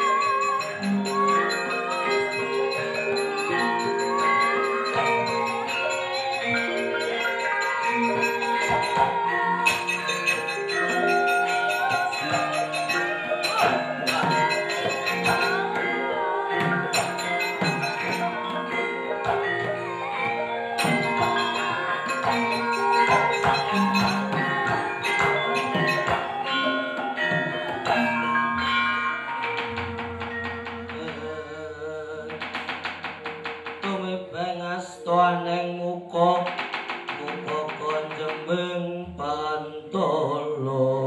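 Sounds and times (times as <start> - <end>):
gamelan metallophones ringing: 0.0 - 34.6.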